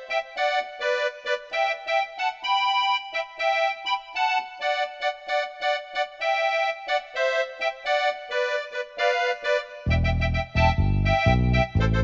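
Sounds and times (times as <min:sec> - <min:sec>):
electronic keyboard melody: 0:00.0 - 0:12.0.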